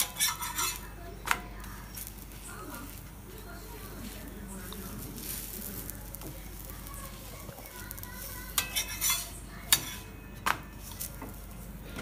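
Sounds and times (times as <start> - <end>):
spatula clicking and scraping pan: 0.0 - 2.3, 4.0 - 10.1
flatbread sizzling in butter: 0.0 - 10.1.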